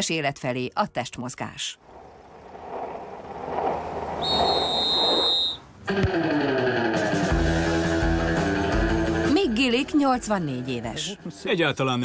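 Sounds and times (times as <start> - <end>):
wheels rolling on asphalt: 1.8 - 6.9
high whistle-like tone: 4.2 - 5.7.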